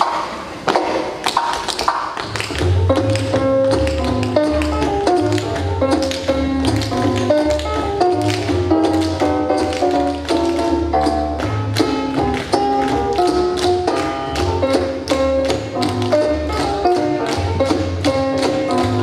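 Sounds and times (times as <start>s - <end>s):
music with bass line: 2.2s - 19.0s.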